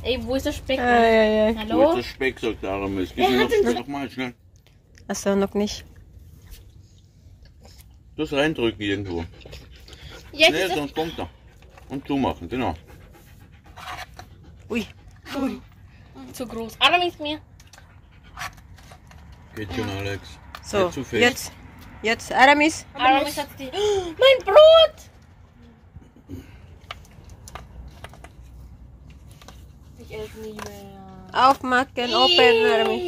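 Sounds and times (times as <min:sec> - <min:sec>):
dog panting: 0:07.4 - 0:19.1.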